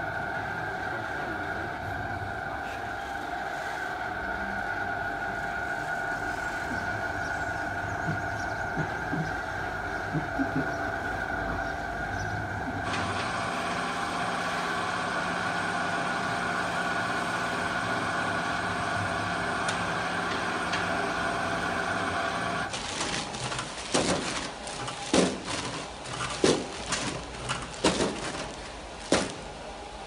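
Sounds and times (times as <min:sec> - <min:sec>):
sharp knocks and clatter: 0:23.0 - 0:29.4.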